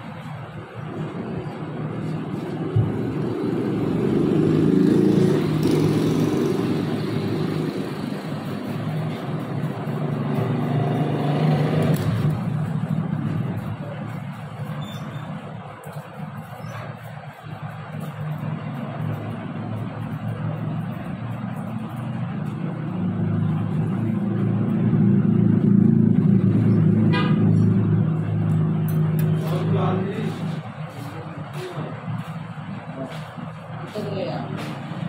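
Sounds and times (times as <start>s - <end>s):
vehicle engine rumbling: 0.0s - 35.0s.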